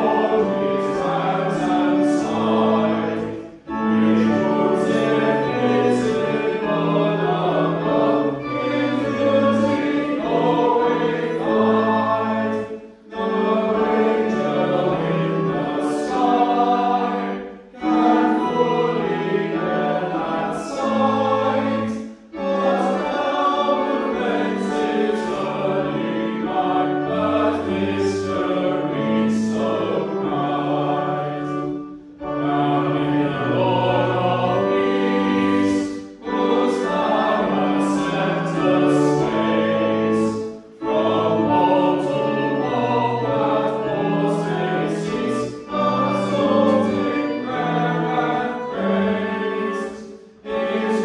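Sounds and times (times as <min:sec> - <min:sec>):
congregation singing a hymn: 0:00.0 - 0:51.0.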